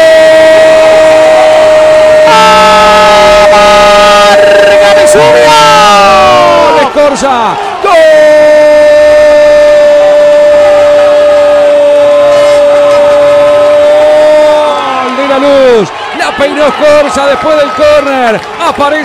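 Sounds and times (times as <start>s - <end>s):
radio commentator shouting goal: 0.0s - 19.0s.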